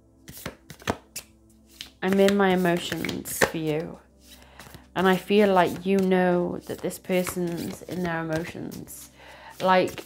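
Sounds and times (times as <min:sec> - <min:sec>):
cards being shuffled: 0:00.3 - 0:10.0.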